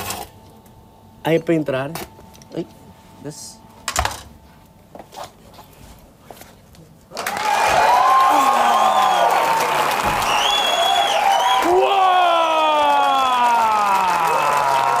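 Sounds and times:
audience applauding: 7.2s - 15.0s
people whooping: 7.2s - 15.0s.

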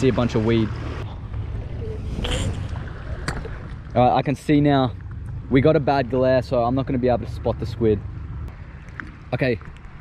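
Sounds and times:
boat motor rumble: 0.0s - 10.0s.

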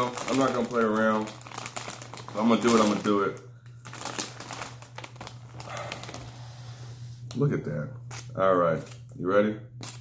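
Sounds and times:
plastic chip bag crinkling: 0.0s - 6.3s.

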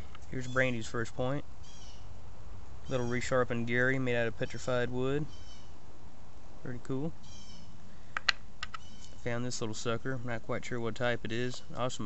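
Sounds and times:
stones knocking on wooden board: 8.2s - 8.8s.

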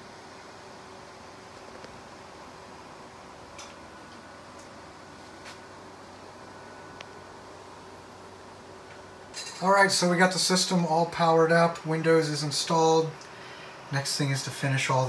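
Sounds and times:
computer fans humming: 0.0s - 15.0s.

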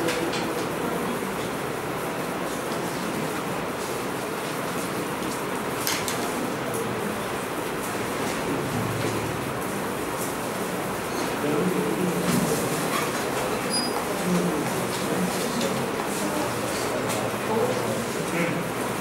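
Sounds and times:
classroom background noise: 0.0s - 19.0s.

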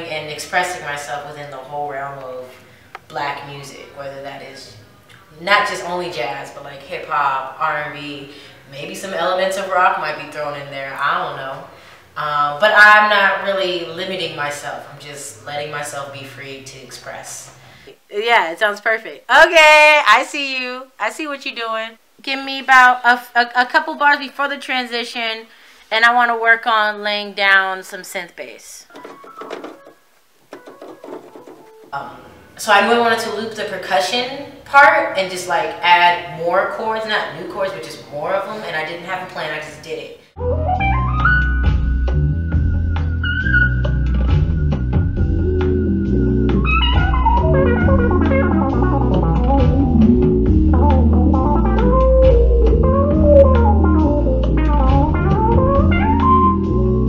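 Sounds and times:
looped percussion: 28.9s - 32.0s, 40.4s - 57.0s
deep bass line: 40.4s - 57.0s
held high synth tone: 45.2s - 57.0s
electric keyboard short notes: 45.4s - 57.0s.

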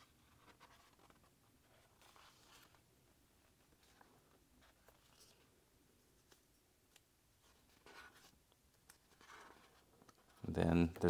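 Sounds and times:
book pages rustling: 0.0s - 2.8s, 3.4s - 5.5s, 6.2s - 10.4s.

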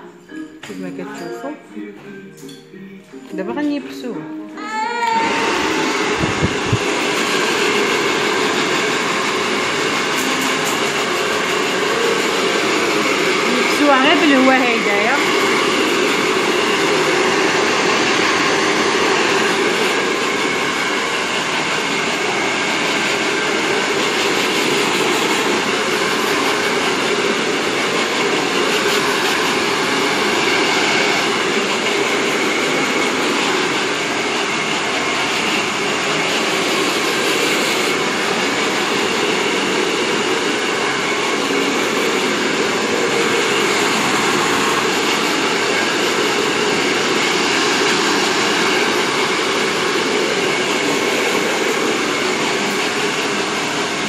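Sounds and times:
hair dryer running: 3.2s - 54.0s.

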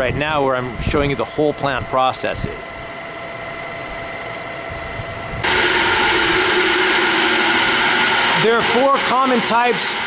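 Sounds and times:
faint high whine: 0.0s - 10.0s
machinery hum: 0.0s - 10.0s.

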